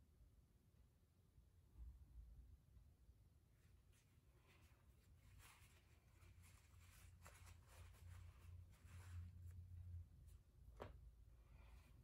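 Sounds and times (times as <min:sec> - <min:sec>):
faint rustles: 0:03.6 - 0:12.0.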